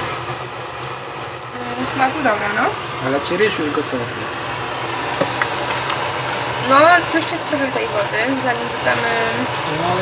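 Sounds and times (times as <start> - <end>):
kitchen fan whirring: 0.0 - 10.0.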